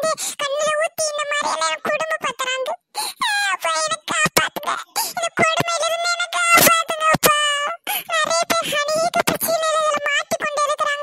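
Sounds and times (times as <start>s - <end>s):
cartoon crying voice: 0.0s - 11.0s.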